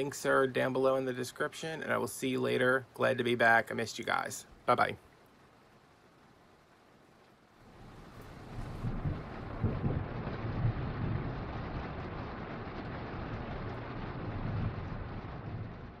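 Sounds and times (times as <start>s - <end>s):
steady hiss: 0.0s - 10.2s
low uneven rumble: 7.6s - 16.0s.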